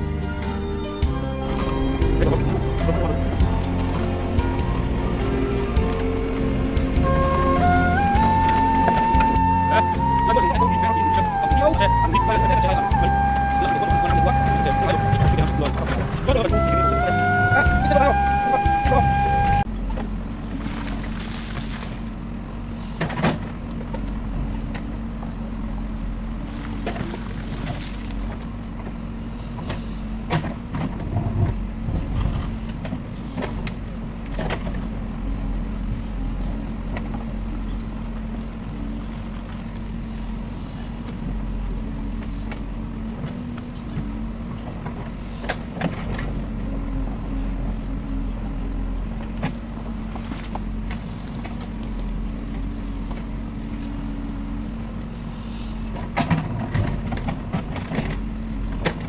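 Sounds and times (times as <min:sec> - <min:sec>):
diesel engine under load: 0:00.0 - 0:59.0.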